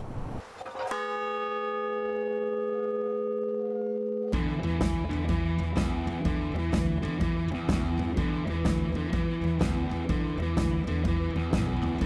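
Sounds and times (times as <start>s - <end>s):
large bell ringing: 0.9s - 4.8s.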